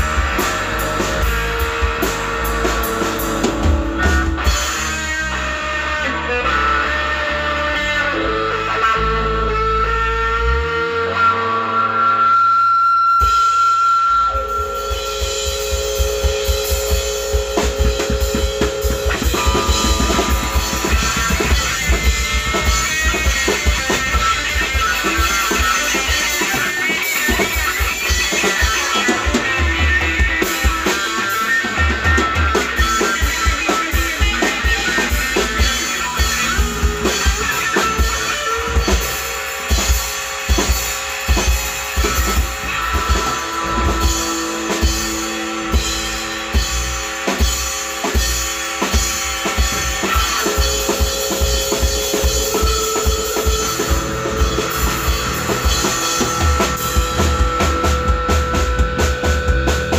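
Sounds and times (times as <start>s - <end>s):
drum kit playing: 0.0s - 11.4s, 13.0s - 59.9s
bass guitar: 0.0s - 59.9s
electric guitar: 0.0s - 59.9s.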